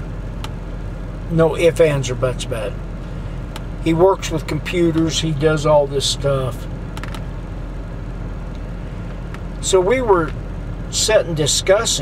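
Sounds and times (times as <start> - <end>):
vehicle idling hum: 0.0 - 12.0.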